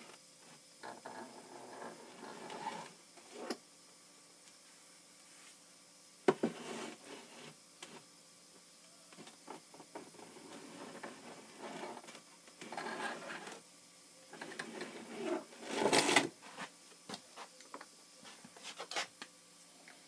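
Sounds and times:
plastic pipe rustling and scraping: 0:09.5 - 0:13.6, 0:14.4 - 0:16.8.

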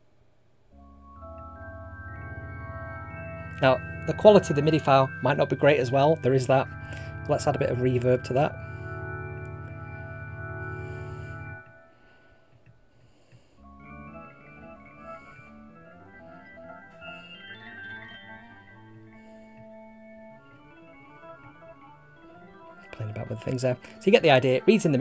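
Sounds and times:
pipe organ toccata with reverb: 0:00.7 - 0:12.5, 0:13.6 - 0:25.0.

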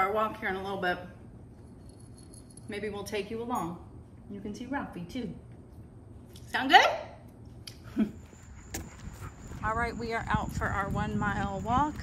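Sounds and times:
dog collar tags jingling: 0:01.6 - 0:03.8.

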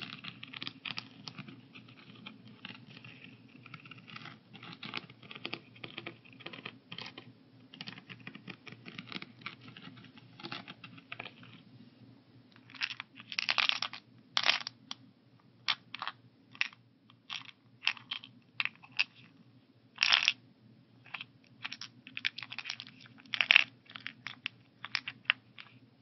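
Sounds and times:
pills rattling in organizer: 0:12.6 - 0:14.8, 0:15.7 - 0:19.3, 0:20.0 - 0:20.4, 0:21.0 - 0:25.8.

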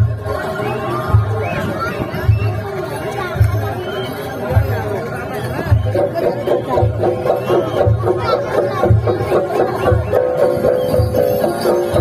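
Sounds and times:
crowd chatter: 0:00.0 - 0:12.0
deep bass drum beats: 0:01.0 - 0:03.8, 0:04.5 - 0:12.0.

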